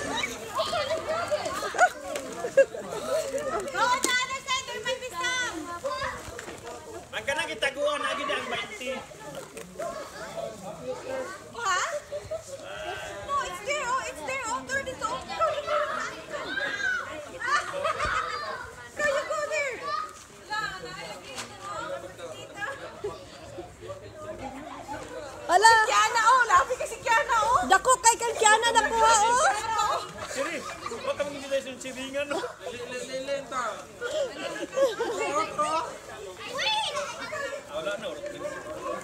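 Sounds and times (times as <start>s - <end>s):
children shouting as they play: 0.0s - 2.0s, 14.6s - 20.2s, 36.3s - 37.7s
children calling and chattering: 0.0s - 39.0s.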